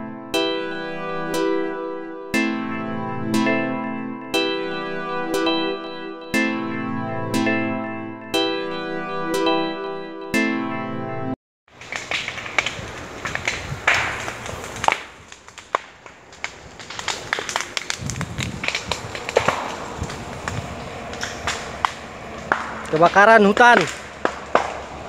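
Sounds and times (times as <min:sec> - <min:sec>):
dry brush crackling and snapping: 0:11.7 - 0:25.0.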